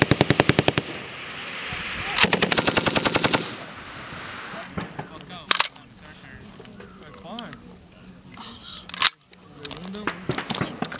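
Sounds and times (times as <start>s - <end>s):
low background noise: 0.0s - 10.9s
sharp loud bang: 3.4s - 5.8s.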